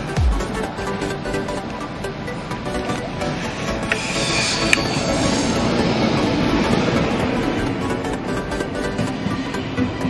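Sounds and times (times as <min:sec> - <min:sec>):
train wheels rolling on rails: 0:00.0 - 0:10.0.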